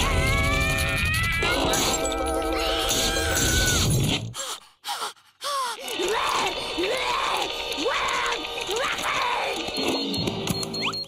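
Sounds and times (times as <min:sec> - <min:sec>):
cartoon character screaming: 0:00.0 - 0:04.0
background music: 0:05.8 - 0:11.0.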